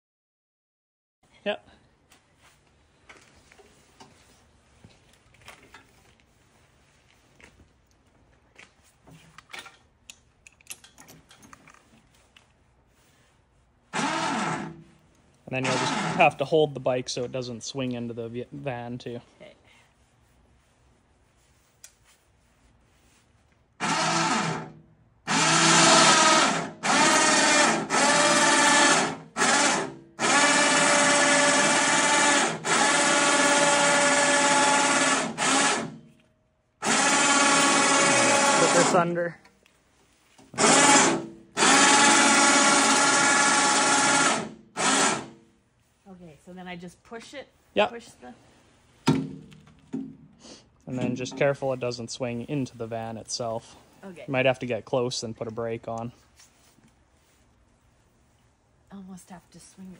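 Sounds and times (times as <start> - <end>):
electric winch motor running: 13.9 - 14.9, 15.5 - 16.4, 23.8 - 36.1, 36.8 - 39.2, 40.5 - 45.4.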